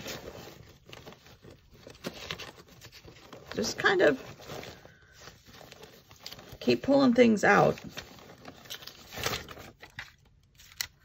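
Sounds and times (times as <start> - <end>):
paper rustling: 0.0 - 11.0.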